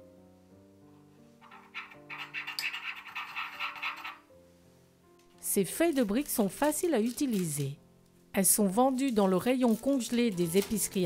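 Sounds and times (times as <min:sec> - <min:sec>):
teaspoon scraping and clinking bowl: 0:01.4 - 0:04.2.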